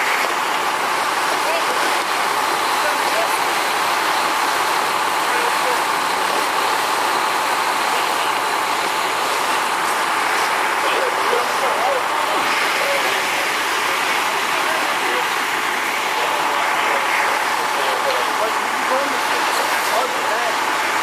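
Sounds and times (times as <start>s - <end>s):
loud mechanical drone: 0.0s - 21.0s
faint voices: 1.2s - 21.0s.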